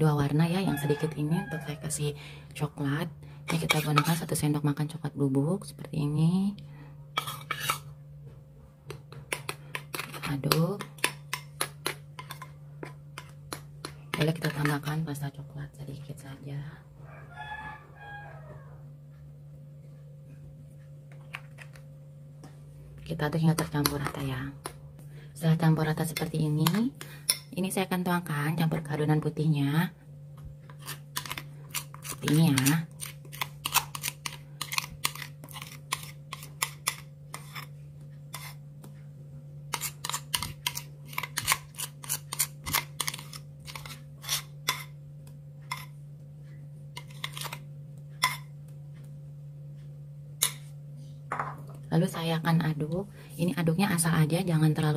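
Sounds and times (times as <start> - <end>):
steady low hum: 0.0 - 54.9
spatula scraping a bowl: 3.5 - 4.4, 7.2 - 8.0, 9.1 - 15.1, 30.6 - 38.7, 39.7 - 45.0, 45.6 - 46.0, 46.9 - 48.6.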